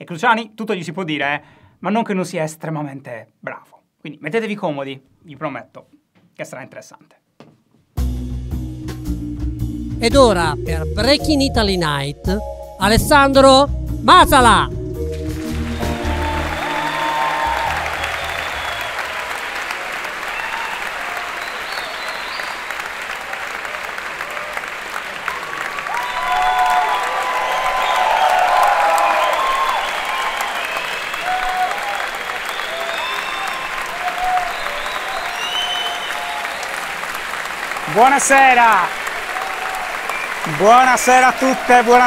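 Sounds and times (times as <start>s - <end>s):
audience applauding: 15.1s - 42.0s
cheers and whoops: 15.6s - 37.2s, 37.8s - 42.0s.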